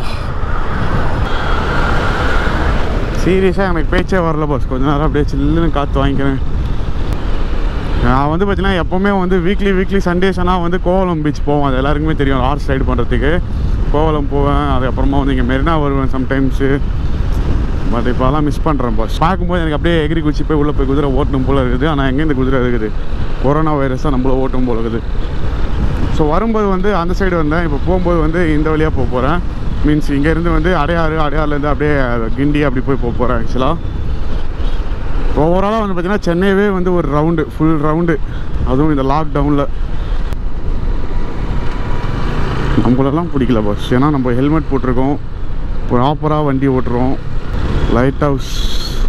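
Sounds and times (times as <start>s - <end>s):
motorcycle being ridden: 0.0s - 49.0s
wind rumble: 0.0s - 49.0s
man talking: 3.2s - 6.4s, 8.0s - 16.8s, 17.9s - 25.1s, 26.2s - 33.8s, 35.3s - 39.8s, 42.7s - 45.2s, 45.9s - 47.2s, 47.8s - 49.0s.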